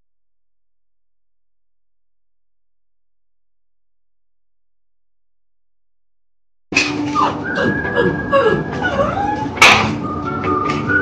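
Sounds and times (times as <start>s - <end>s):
dog whimpering: 7.0s - 10.0s.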